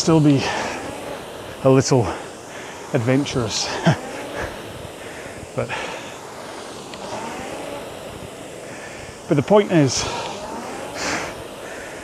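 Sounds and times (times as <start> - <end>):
rowing machine flywheel whirring: 0.0 - 12.0.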